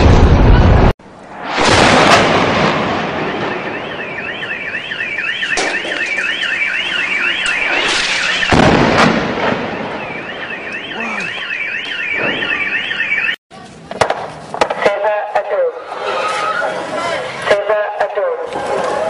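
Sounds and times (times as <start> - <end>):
loud boom: 0.0 - 4.4, 7.5 - 10.3
alarm siren warbling: 2.9 - 8.7, 9.3 - 13.4.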